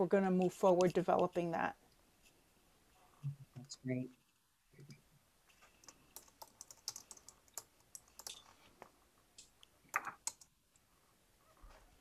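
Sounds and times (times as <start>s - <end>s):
faint keyboard typing: 4.8s - 10.9s.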